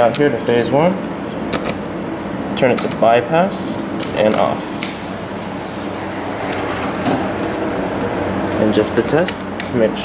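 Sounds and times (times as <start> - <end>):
elevator doors sliding closed: 4.6 - 8.0.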